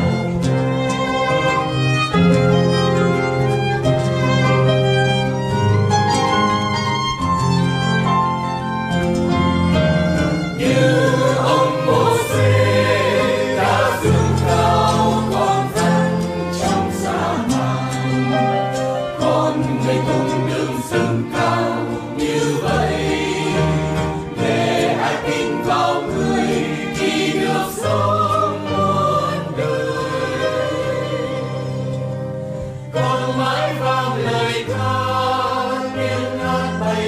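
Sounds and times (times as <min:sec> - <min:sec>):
sustained instrumental accompaniment: 0:00.0 - 0:37.0
choir singing sacred song: 0:10.6 - 0:37.0.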